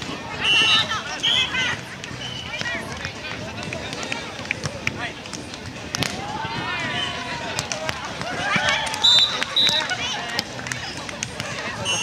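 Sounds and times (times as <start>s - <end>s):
players' voices: 0.0s - 12.0s
hands slapping volleyball: 2.0s - 6.3s, 7.5s - 11.8s.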